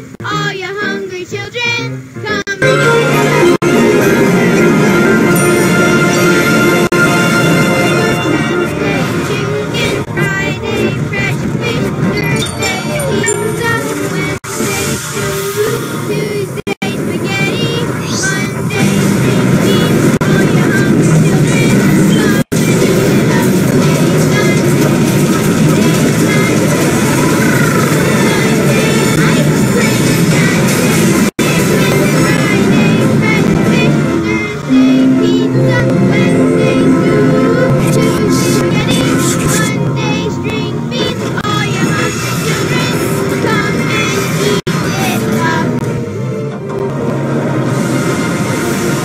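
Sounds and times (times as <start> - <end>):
children's song: 0.0 - 46.8
music and sound effects jumble: 1.9 - 49.0
logo jingles and sound effects: 12.2 - 14.4
hiss: 14.5 - 16.5.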